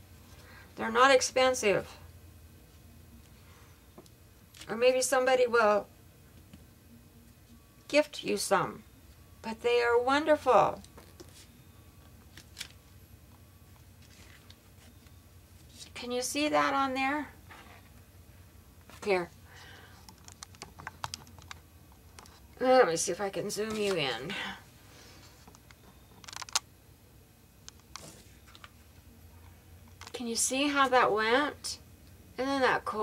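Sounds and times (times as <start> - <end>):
low steady hum: 0.0 - 33.0
paper rustling: 14.0 - 15.0.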